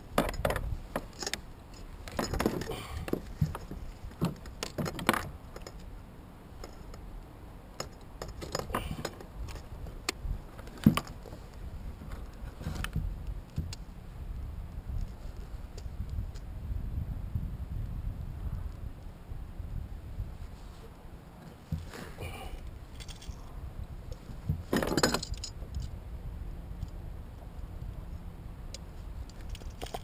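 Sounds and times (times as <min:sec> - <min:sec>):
fishing gear clicking and rattling: 0:00.1 - 0:05.9, 0:06.6 - 0:07.0, 0:07.8 - 0:13.0, 0:21.8 - 0:23.5, 0:24.1 - 0:26.0, 0:29.2 - 0:30.0.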